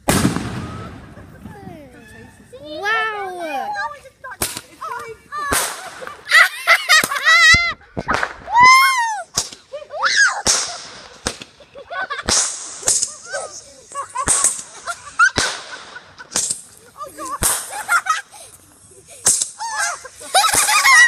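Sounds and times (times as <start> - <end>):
fireworks popping and cracking: 0.0 - 2.0, 4.3 - 9.8, 10.4 - 21.0
firework hissing bursts: 12.2 - 20.9.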